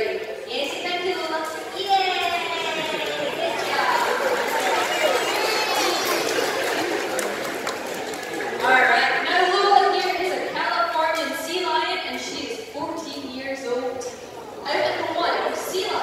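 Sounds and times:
audience chatter: 0:00.0 - 0:12.3, 0:13.8 - 0:16.0
speech echoing in a hall: 0:00.0 - 0:16.0.

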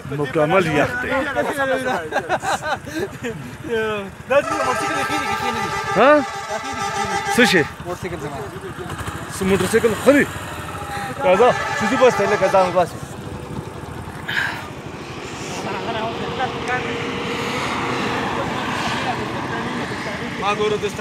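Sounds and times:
man talking: 0:00.0 - 0:10.3, 0:11.1 - 0:13.1
vehicle engine running: 0:00.0 - 0:21.0
people chattering: 0:07.2 - 0:21.0.

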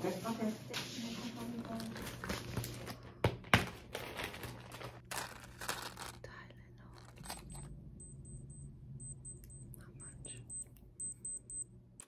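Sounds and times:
thermometer high-pitched beeps: 0:08.0 - 0:11.7.

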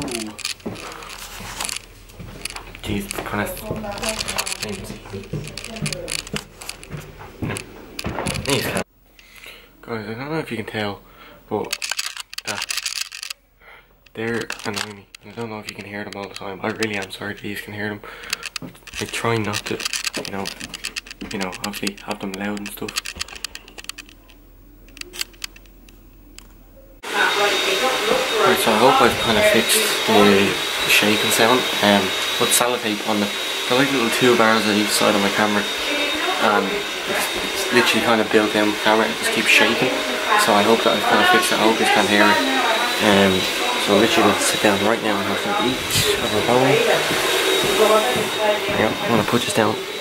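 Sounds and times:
camera clicking and rattling: 0:00.0 - 0:03.3, 0:03.9 - 0:08.6, 0:11.7 - 0:13.4, 0:14.4 - 0:17.3, 0:18.2 - 0:26.0.

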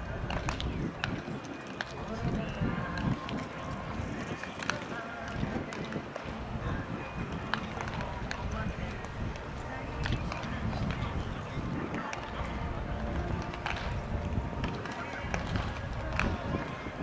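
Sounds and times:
spectators chattering: 0:00.0 - 0:17.0
baseballs smacking into gloves: 0:00.2 - 0:02.3, 0:07.3 - 0:11.2, 0:11.9 - 0:16.8.

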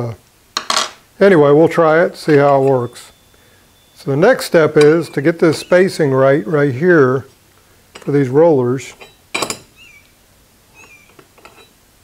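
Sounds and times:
faint high chirps: 0:02.2 - 0:06.6, 0:09.0 - 0:11.8.

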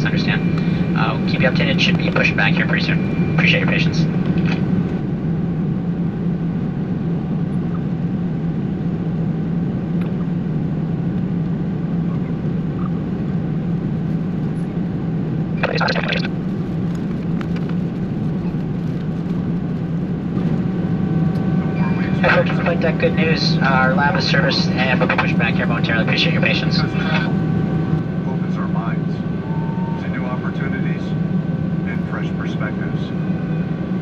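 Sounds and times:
aircraft cabin ventilation hum: 0:00.0 - 0:34.0.

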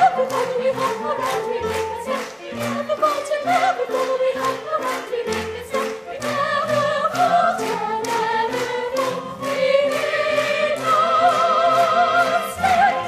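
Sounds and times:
youth chorus singing with vibrato: 0:00.0 - 0:13.0.

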